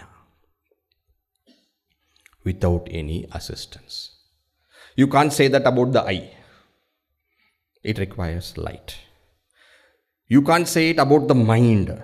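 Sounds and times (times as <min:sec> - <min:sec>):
man speaking: 0:00.0 - 0:00.3, 0:02.4 - 0:04.2, 0:05.0 - 0:06.4, 0:07.8 - 0:09.1, 0:10.3 - 0:12.0.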